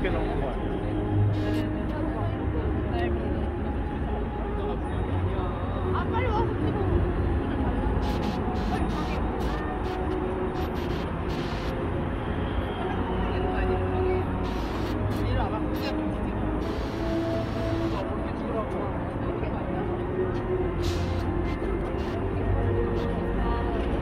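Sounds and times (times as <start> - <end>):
car traffic rumble: 0.0 - 24.0
music: 0.0 - 24.0.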